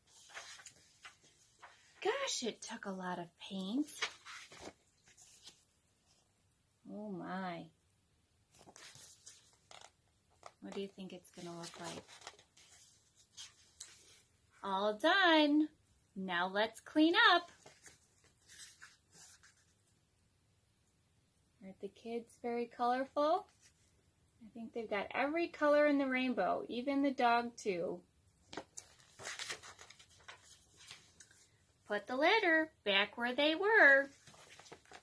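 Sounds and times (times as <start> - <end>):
paper pages rustling: 0.0 - 2.3, 3.8 - 6.2, 8.5 - 14.3, 17.4 - 19.8, 28.4 - 31.6, 33.8 - 35.0.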